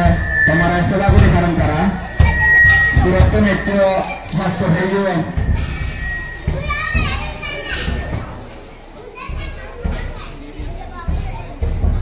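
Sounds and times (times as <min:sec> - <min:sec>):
children calling out and chattering: 0:00.0 - 0:12.0.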